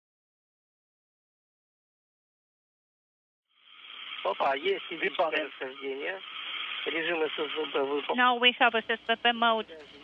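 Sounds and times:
steady radio hiss: 3.6 - 10.0
voice over radio: 4.3 - 10.0.

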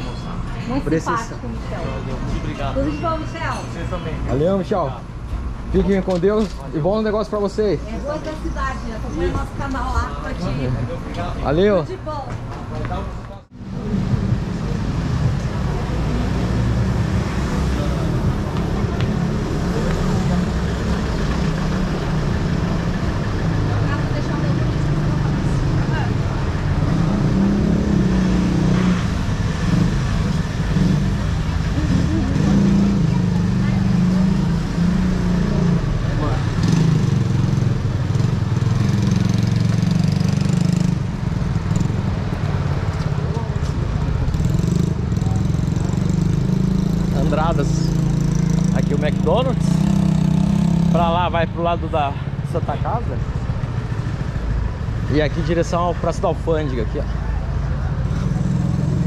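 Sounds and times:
indistinct voices of passers-by: 0.0 - 59.0
street traffic: 0.0 - 59.0.

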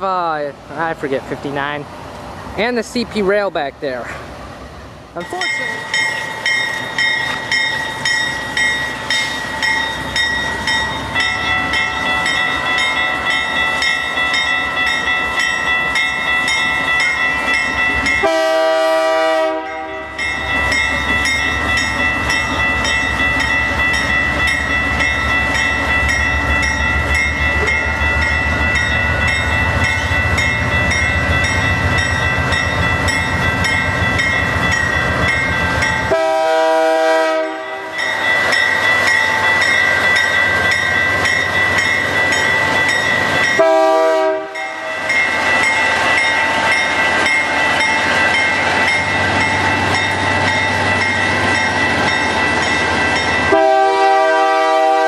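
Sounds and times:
diesel locomotives rumbling: 0.0 - 55.0
train horn blasts: 18.2 - 20.2, 36.1 - 38.0, 43.6 - 44.9, 53.5 - 55.0.

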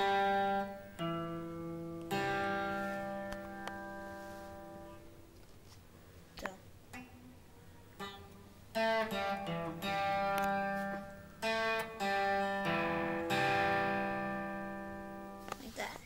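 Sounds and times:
electric guitar strumming chords: 0.0 - 5.4, 8.0 - 15.5.

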